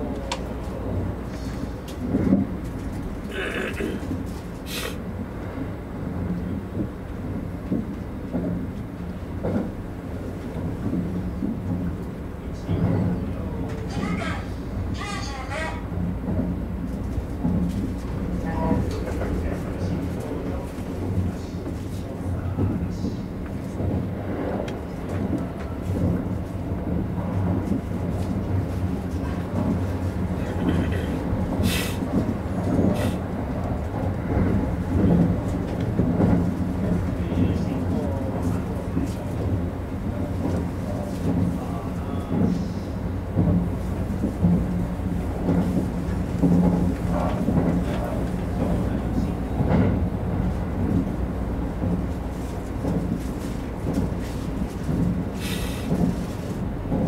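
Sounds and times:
train rumble and hum: 0.0 - 57.0.

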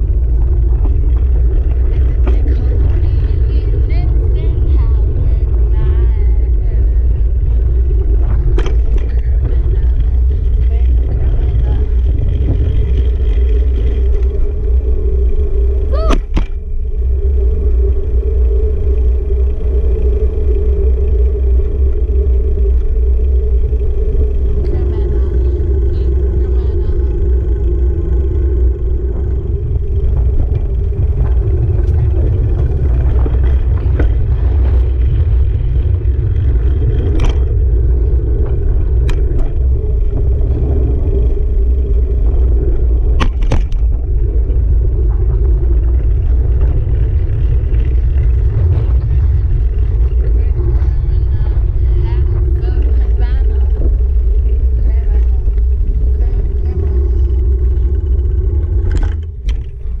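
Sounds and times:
road and tyre noise: 0.0 - 60.0
wind buffeting microphone: 0.0 - 60.0.

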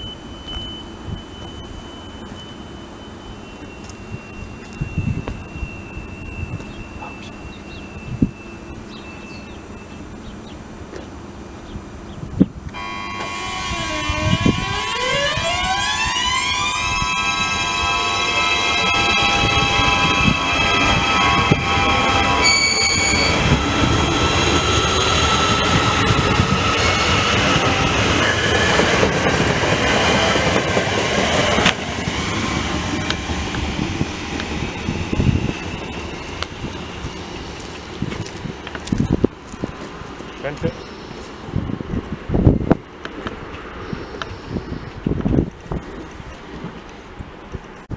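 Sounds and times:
high beep: 0.0 - 10.1, 16.1 - 23.7
train drive whine rising: 0.0 - 45.1
train wheels rumbling and clattering: 0.0 - 47.9.

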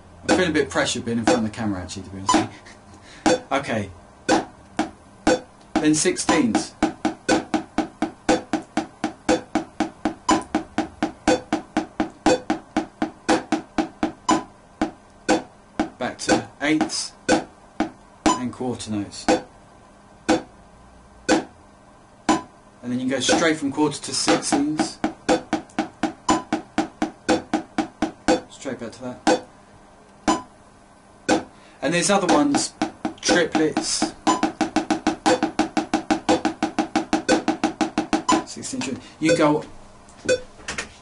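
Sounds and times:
metronome ticking: 0.3 - 1.5, 3.2 - 3.5, 4.3 - 18.5, 19.3 - 19.5, 20.3 - 20.5, 21.3 - 21.5, 22.3 - 22.5, 23.3 - 23.6, 24.3 - 28.5, 29.3 - 29.5, 30.3 - 30.5, 31.3 - 31.6, 32.2 - 38.5, 39.3 - 39.6
drumstick tapping on a book: 1.2 - 1.5, 4.3 - 18.0, 24.3 - 28.4, 32.3 - 38.5
metronome clicking: 1.2 - 1.5, 7.2 - 7.6, 8.3 - 13.6, 24.3 - 26.6, 30.3 - 30.5.

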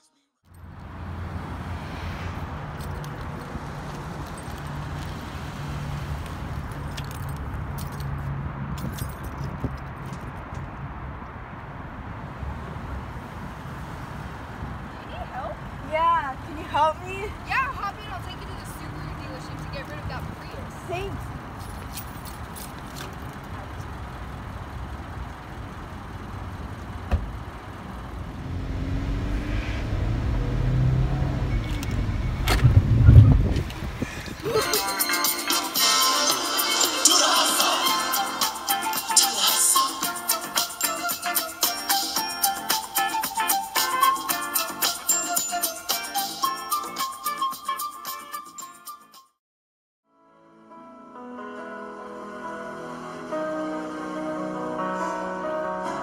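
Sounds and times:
low car rumble: 0.5 - 34.6
metallic clinks and jingles: 2.8 - 5.1, 6.7 - 10.4, 21.5 - 23.5.

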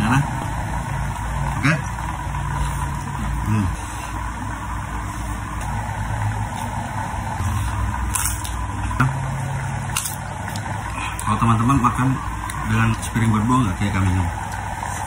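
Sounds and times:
motor humming steadily: 0.0 - 15.0.

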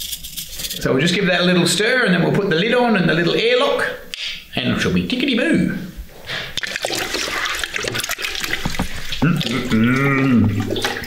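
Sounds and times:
liquid sloshing and swirling: 6.3 - 11.0
spoon knocking plastic bucket: 7.8 - 9.3
man's drawn-out voice: 9.2 - 10.6.

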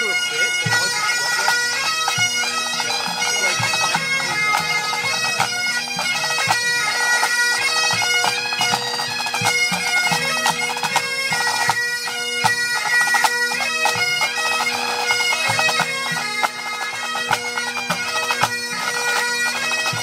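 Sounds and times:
drum strokes: 0.0 - 11.8
bagpipes playing a tune: 0.0 - 20.0.

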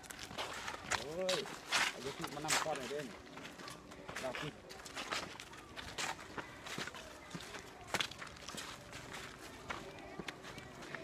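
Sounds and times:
faint voices: 0.0 - 11.0
footsteps on dirt track: 0.0 - 11.0.

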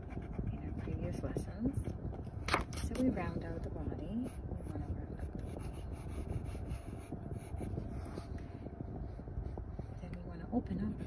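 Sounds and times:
pencil scratching on paper: 0.0 - 1.2, 4.2 - 8.3
low background rumble: 0.0 - 11.0.

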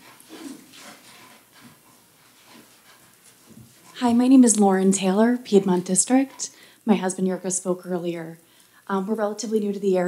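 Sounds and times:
person walking: 0.0 - 4.6.

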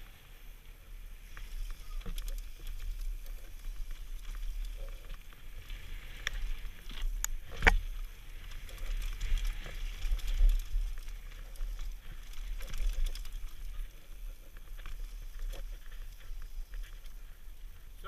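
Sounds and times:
bike clicks and rattles: 1.2 - 18.0
tyres crunching over dirt and stones: 1.3 - 18.0.

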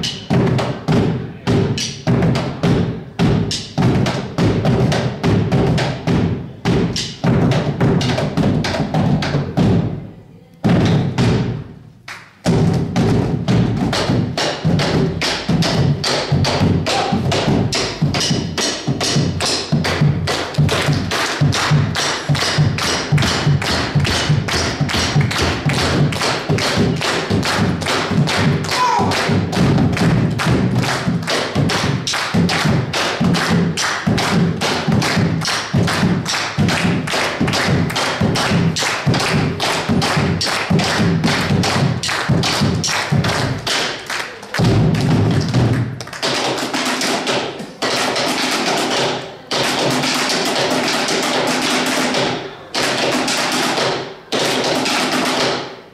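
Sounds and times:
bass drums beaten with sticks: 0.0 - 10.0, 10.6 - 11.8, 12.4 - 43.8, 44.6 - 46.0.

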